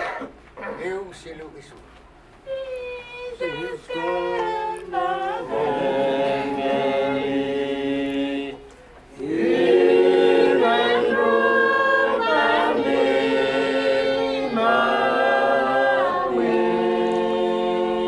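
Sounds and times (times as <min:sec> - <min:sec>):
congregation singing a hymn: 0:03.4 - 0:18.0.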